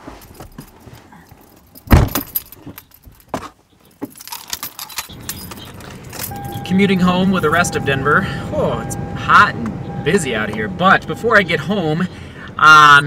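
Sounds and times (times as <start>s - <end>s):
keys jangling: 0.1s - 3.3s, 3.9s - 6.7s
car door shutting: 1.9s - 2.4s.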